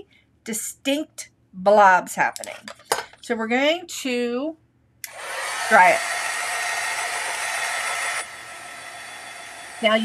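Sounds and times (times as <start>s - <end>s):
heat tool fan hissing: 5.1s - 10.0s.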